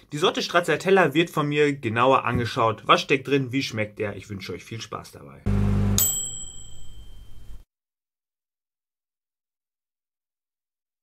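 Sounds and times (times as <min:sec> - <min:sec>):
bright ding: 0:06.0 - 0:07.6.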